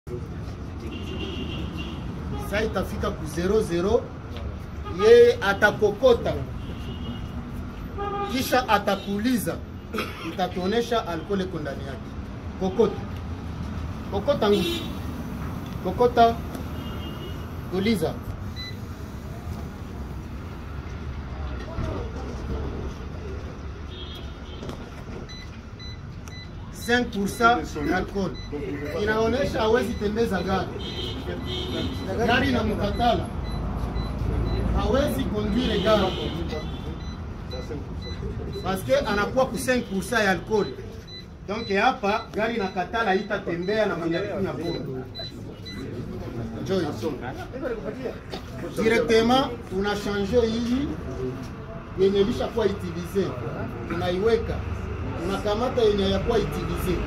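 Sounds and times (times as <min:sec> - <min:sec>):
high electronic beeps: 0:18.5 - 0:19.2, 0:25.3 - 0:30.7, 0:31.9 - 0:35.2, 0:40.5 - 0:45.9.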